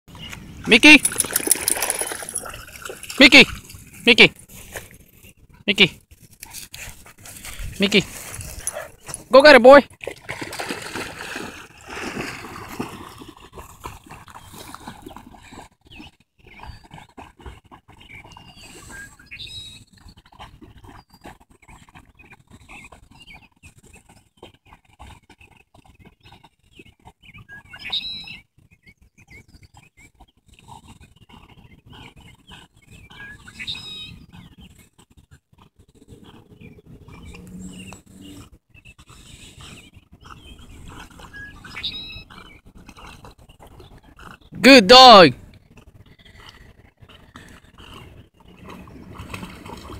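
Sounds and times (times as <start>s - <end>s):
dog swimming: 0.2s - 49.9s.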